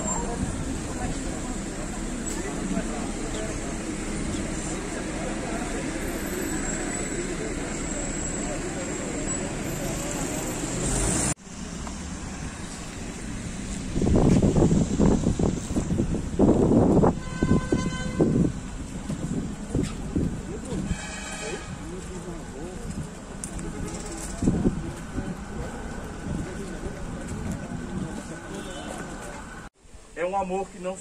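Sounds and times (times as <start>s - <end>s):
murmur of voices: 0.0s - 10.6s
horn toot: 17.1s - 18.6s, 20.7s - 21.9s.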